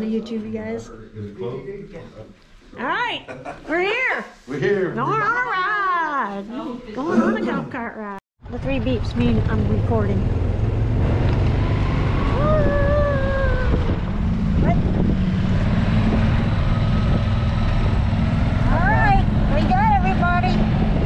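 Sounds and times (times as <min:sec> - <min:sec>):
voices: 0:01.1 - 0:10.4, 0:18.7 - 0:20.7
golf cart rumble: 0:08.6 - 0:21.0
wind buffeting microphone: 0:08.6 - 0:21.0
person calling out: 0:12.4 - 0:13.9.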